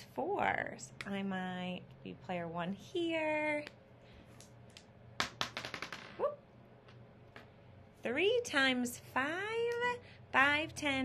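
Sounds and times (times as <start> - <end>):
dice clattering on board: 5.2 - 6.2.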